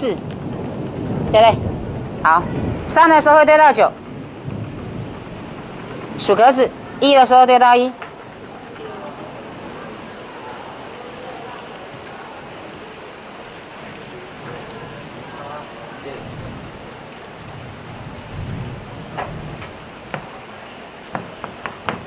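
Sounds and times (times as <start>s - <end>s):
classroom hiss: 6.2s - 16.3s
faint low murmuring: 8.1s - 18.2s
chalk tapping on blackboard: 21.1s - 22.0s.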